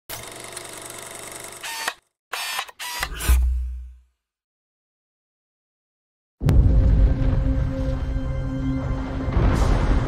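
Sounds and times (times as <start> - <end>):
film projector whir and clicking: 0.1 - 3.3
deep bass hit: 6.4 - 10.0.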